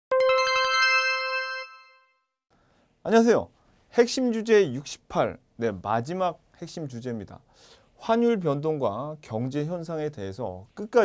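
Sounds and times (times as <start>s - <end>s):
bell-like chime: 0.1s - 2.3s.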